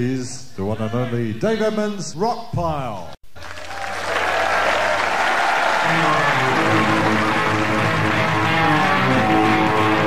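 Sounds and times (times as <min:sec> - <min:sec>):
audience applauding: 0:03.4 - 0:10.0
guitar and bass notes: 0:05.8 - 0:10.0
rock band playing: 0:05.8 - 0:10.0.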